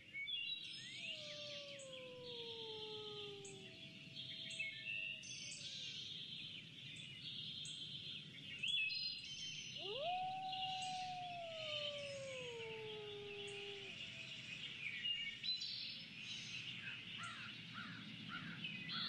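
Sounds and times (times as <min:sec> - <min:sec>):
birds chirping and calling: 0:00.8 - 0:06.2, 0:09.8 - 0:14.5
long rising tone: 0:09.8 - 0:14.1.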